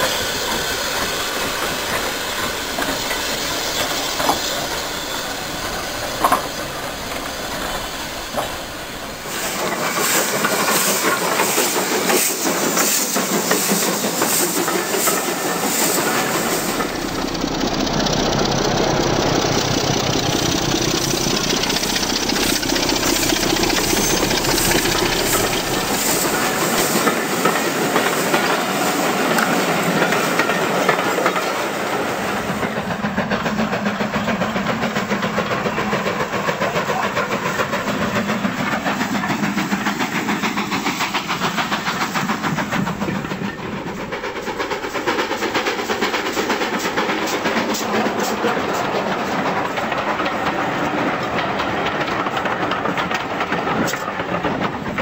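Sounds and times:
model train running: 0.0s - 55.0s
wheels clicking over rail joints: 0.5s - 55.0s.

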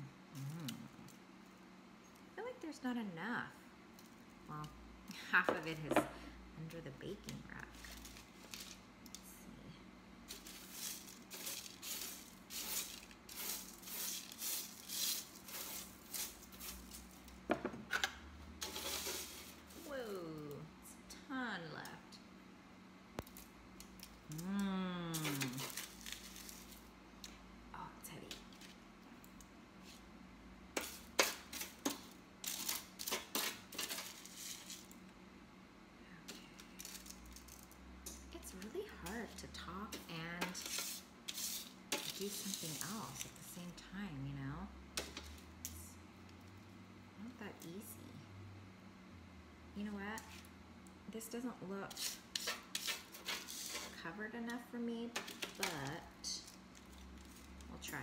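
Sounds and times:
spatula scraping baking sheet: 10.3s - 17.1s, 18.6s - 19.9s, 30.8s - 34.8s, 39.0s - 43.4s, 51.9s - 54.0s
foil crinkling: 25.1s - 26.9s, 55.2s - 57.9s.

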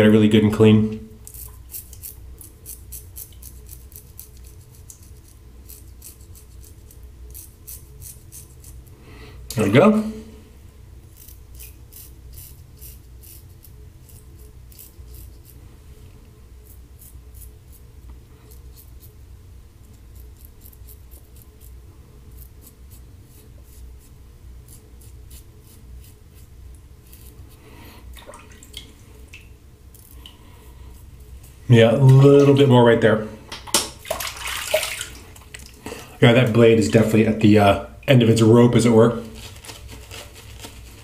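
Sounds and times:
low steady hum: 0.0s - 41.0s
razor scraping through stubble: 1.2s - 8.9s, 11.0s - 15.6s, 16.6s - 19.2s, 19.8s - 27.6s, 29.9s - 32.7s.

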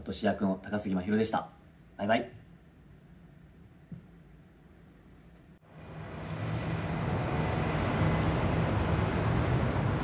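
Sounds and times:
road traffic noise: 5.6s - 10.0s.

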